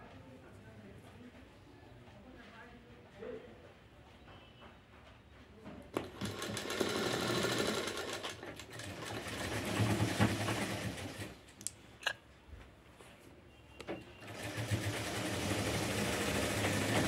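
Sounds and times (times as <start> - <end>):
sewing machine stitching: 6.0 - 11.4, 14.2 - 17.0.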